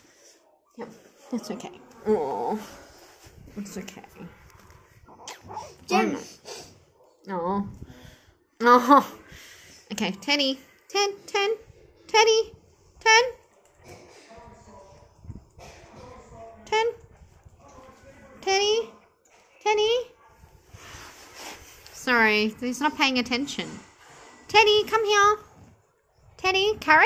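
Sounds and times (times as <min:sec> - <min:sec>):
quiet talk: 0:00.0 - 0:07.9, 0:08.6 - 0:21.0.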